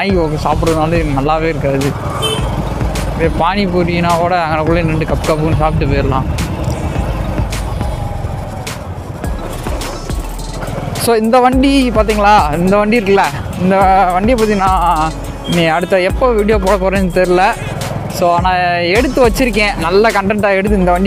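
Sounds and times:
motorcycle engine running: 0.0s - 21.0s
person speaking: 11.0s - 21.0s.

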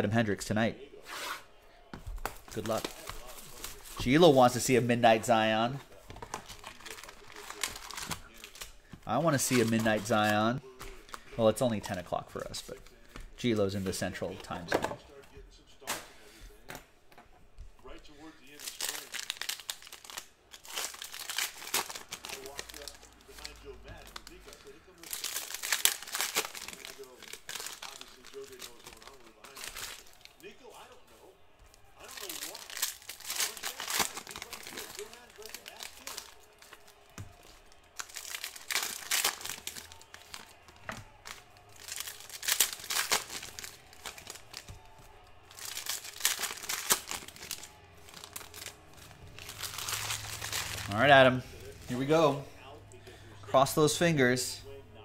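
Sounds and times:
foil wrappers crinkling and tearing: 2.3s - 12.1s, 18.4s - 30.5s, 31.8s - 52.2s.

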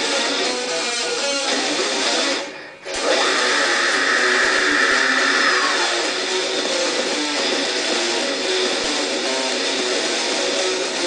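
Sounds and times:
distorted electric guitar riff: 0.0s - 11.0s.

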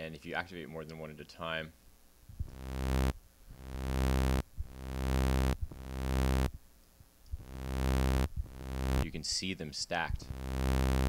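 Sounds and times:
low sawtooth synth notes: 2.5s - 6.5s, 7.4s - 9.0s, 10.3s - 11.0s.

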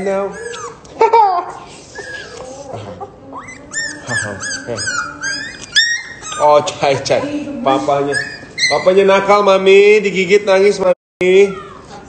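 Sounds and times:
puppy whimpering squeals: 0.0s - 9.3s, 11.4s - 12.0s.

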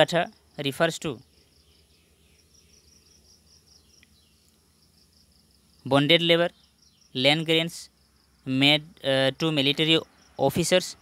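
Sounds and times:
person speaking: 8.5s - 11.0s.

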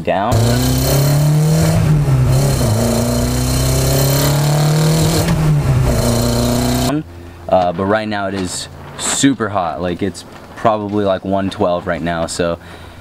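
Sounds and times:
car engine accelerating: 0.3s - 7.2s.

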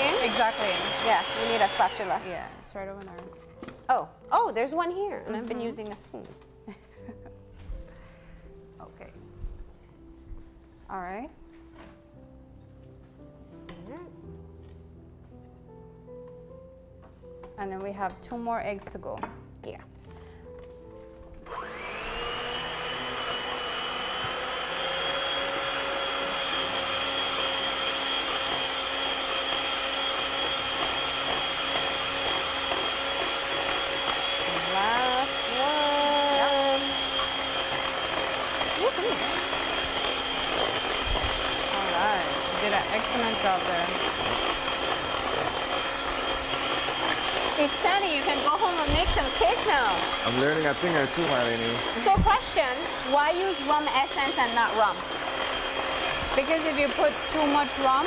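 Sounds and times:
electric hand mixer whining: 0.0s - 3.8s, 4.6s - 8.4s, 20.2s - 58.0s.

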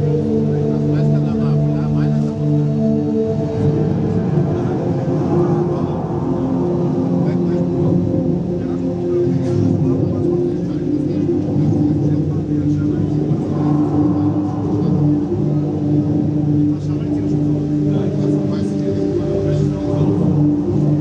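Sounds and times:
sustained low droning tones: 0.0s - 21.0s.

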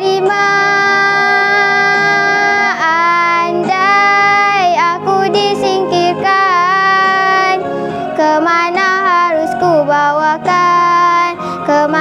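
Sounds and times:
backing track music: 0.0s - 12.0s
girl singing: 0.0s - 12.0s.

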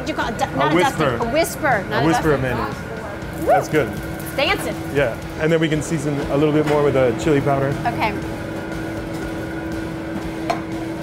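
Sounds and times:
kitchen ventilation hum: 0.0s - 11.0s.

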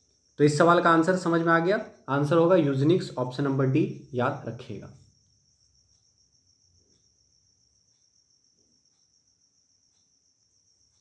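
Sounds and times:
faint ticks: 5.0s - 11.0s.

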